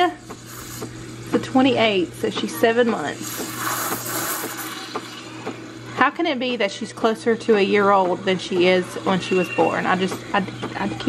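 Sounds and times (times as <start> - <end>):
espresso machine low hum: 0.0 - 11.0
steam wand hissing: 0.3 - 0.9, 3.1 - 5.5.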